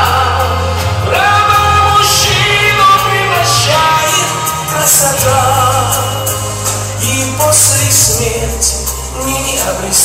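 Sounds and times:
backing music with low bass: 0.0s - 10.0s
men singing a ballad: 0.0s - 10.0s.

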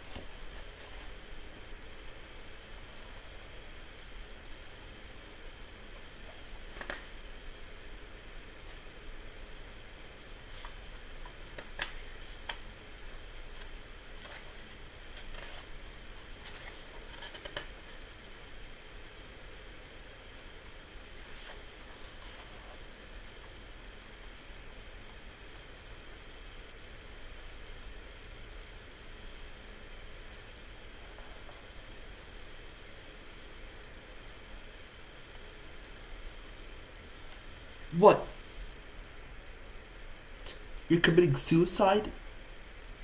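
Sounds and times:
low hum and hiss: 0.0s - 43.0s
pages being turned: 6.7s - 7.1s, 13.5s - 17.8s, 21.2s - 22.9s.

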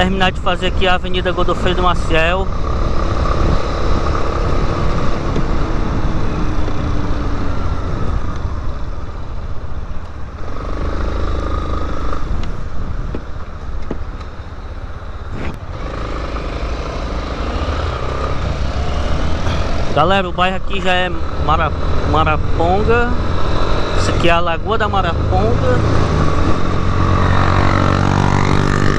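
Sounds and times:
wind and road noise: 0.0s - 28.9s
motorcycle engine running: 15.6s - 23.9s.

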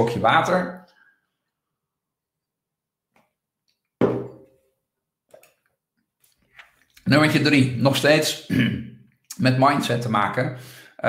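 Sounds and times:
glass knocking on desk: 4.0s - 4.5s.

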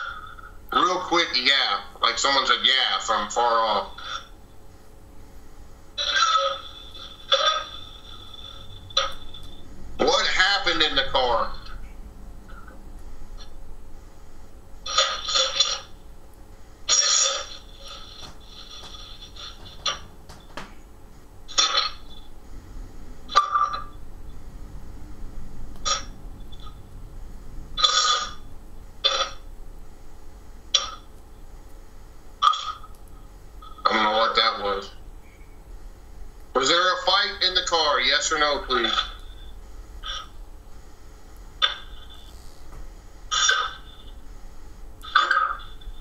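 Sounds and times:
choppy radio noise bursts: 0.0s - 46.0s
steady hum: 0.0s - 46.0s
clipped radio voice fragments: 10.0s - 11.8s, 36.6s - 39.3s.

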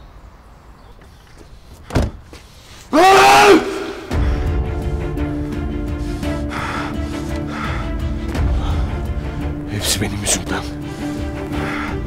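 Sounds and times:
car door shutting: 1.8s - 2.4s.

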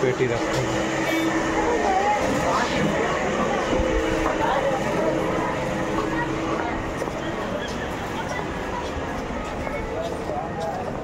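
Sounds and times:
steady hum: 0.0s - 7.5s
people talking: 0.0s - 11.0s.

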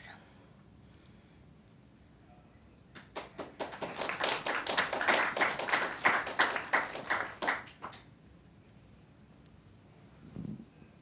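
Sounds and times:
small audience applauding: 2.9s - 8.1s.

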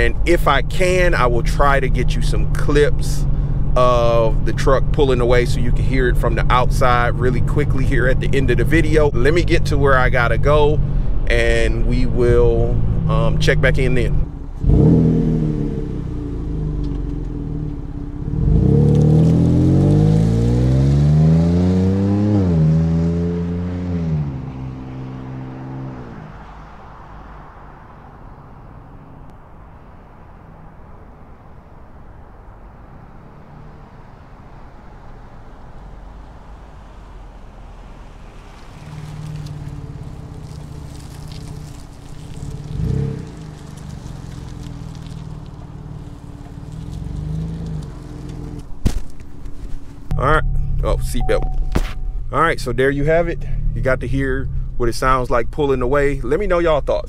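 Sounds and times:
pickup truck exhaust revving: 0.0s - 26.4s, 35.0s - 48.8s, 50.1s - 56.9s.

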